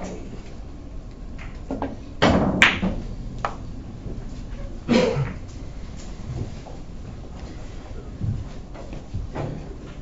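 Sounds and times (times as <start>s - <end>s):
billiard ball thud: 1.4s - 3.7s
billiard balls clicking: 1.4s - 3.7s.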